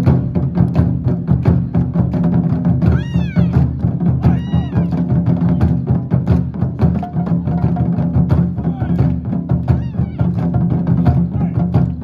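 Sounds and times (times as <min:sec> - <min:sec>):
taiko drums beating: 0:00.0 - 0:12.0
high-pitched shouted calls: 0:04.2 - 0:05.0.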